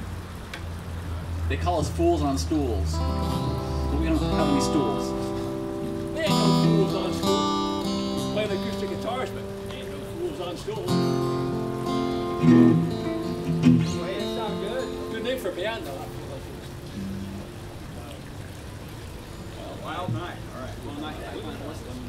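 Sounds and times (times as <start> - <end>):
acoustic guitars strumming chords: 1.6 - 18.0.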